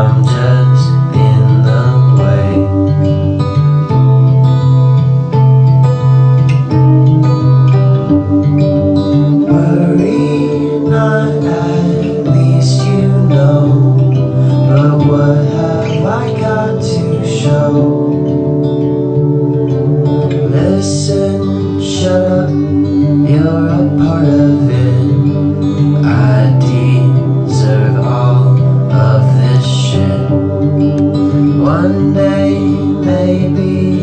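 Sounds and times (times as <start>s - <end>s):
person singing: 0.0s - 4.5s, 6.5s - 34.0s
acoustic guitar: 0.0s - 34.0s.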